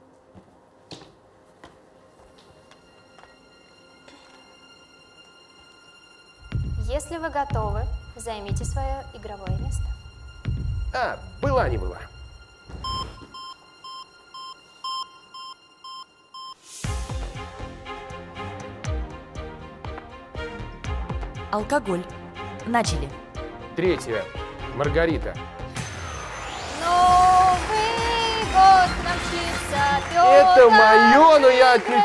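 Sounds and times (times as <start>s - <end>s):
heart monitor beeps: 12.8s - 16.6s.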